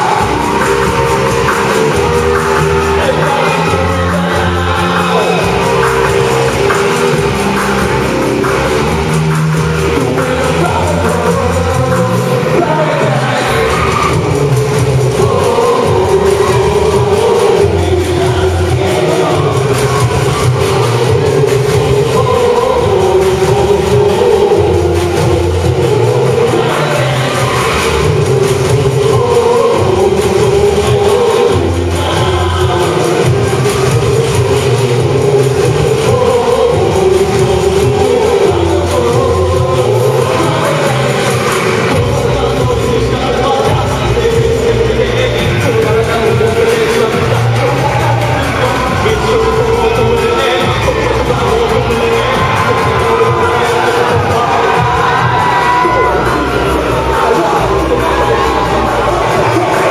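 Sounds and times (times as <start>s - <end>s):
deep bass: 0.0s - 59.9s.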